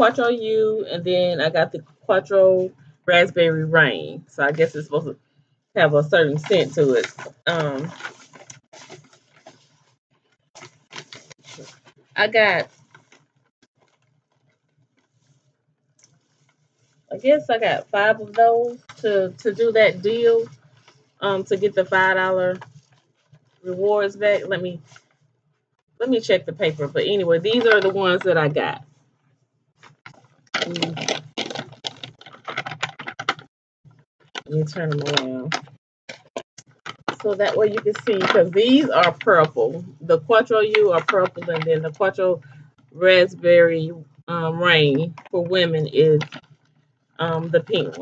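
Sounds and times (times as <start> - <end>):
plastic packs rustling: 6.5 - 9.7, 10.6 - 13.2, 27.5 - 28.2, 30.0 - 33.4.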